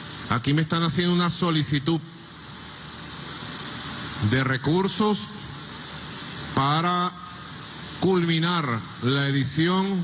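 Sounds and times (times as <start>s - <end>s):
high-pitched background hiss: 0.0s - 10.0s.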